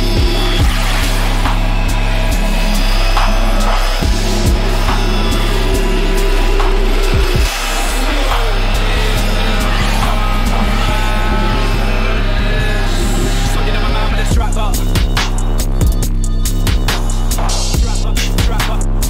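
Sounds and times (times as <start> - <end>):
heavy sub-bass: 0.0 - 19.0.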